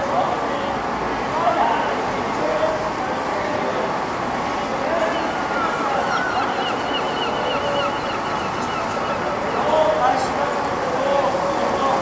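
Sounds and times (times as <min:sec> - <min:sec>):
distant traffic: 0:00.0 - 0:12.0
faint voices: 0:00.0 - 0:12.0.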